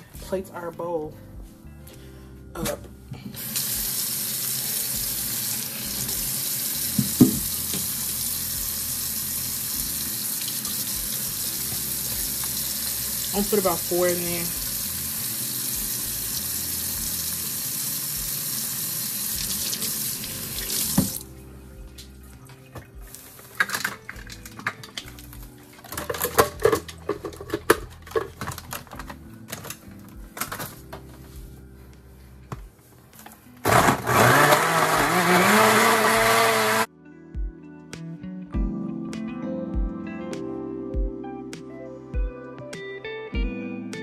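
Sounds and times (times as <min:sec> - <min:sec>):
kitchen tap running: 0:03.4 - 0:21.2
knocks and clatter of handling: 0:23.6 - 0:29.8
blender motor: 0:33.6 - 0:36.9.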